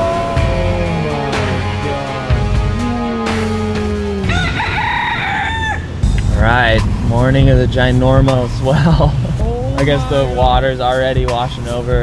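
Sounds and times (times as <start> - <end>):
rooster crowing: 4.1 - 6.0
steady low rumble: 5.8 - 12.0.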